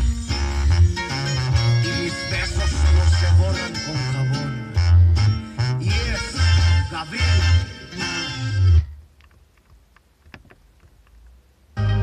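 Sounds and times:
music on radio with bass and guitar: 0.0s - 10.5s, 11.3s - 12.0s.

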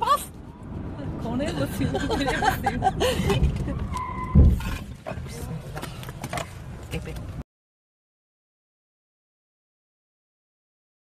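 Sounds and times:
heavy impact thud: 4.3s - 4.8s.

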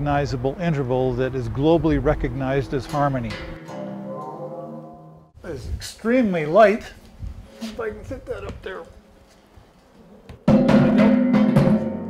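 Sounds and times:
metal wind harp ringing: 1.6s - 5.2s
sharp strikes on harp: 3.3s - 4.6s.

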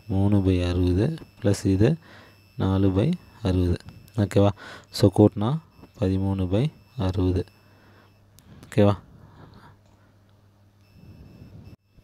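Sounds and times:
electrical hum with high whine: 0.0s - 12.0s.

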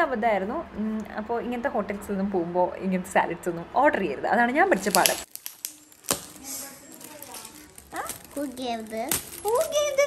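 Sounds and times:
foil gift wrap crinkling: 4.7s - 10.0s.

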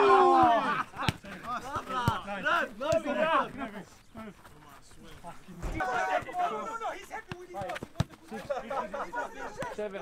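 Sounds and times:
football being kicked: 7.2s - 8.5s.

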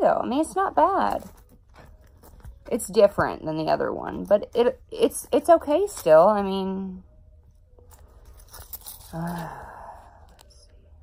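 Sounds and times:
handling noise of key holder: 1.0s - 2.8s, 7.8s - 9.7s.

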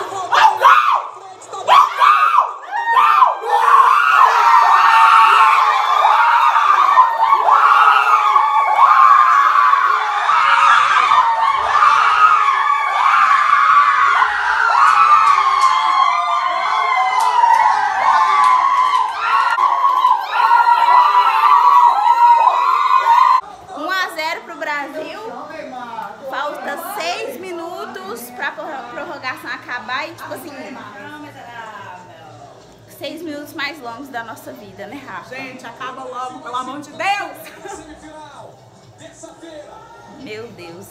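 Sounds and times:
people screaming and shouting: 0.0s - 23.4s.

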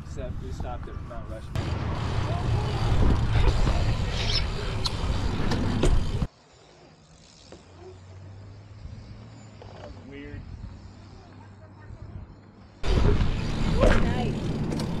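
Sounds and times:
bike tyres rolling on concrete: 0.0s - 15.0s.

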